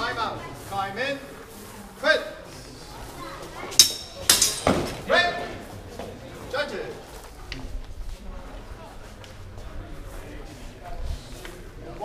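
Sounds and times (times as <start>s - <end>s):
swords clashing: 3.8s - 5.0s.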